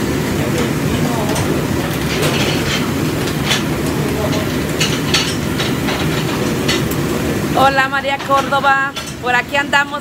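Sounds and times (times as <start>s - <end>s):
gas range rumble: 0.0s - 10.0s
griddle sizzling: 0.0s - 10.0s
oil bubbling in deep fryer: 0.0s - 10.0s.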